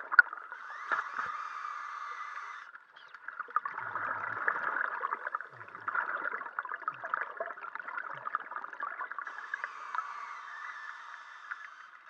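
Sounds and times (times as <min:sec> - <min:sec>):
underwater regulator bubbling: 0:03.6 - 0:11.9.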